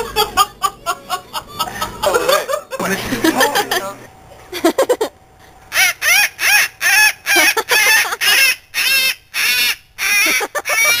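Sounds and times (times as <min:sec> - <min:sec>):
cockatoo harsh calls: 0:05.7 - 0:11.0.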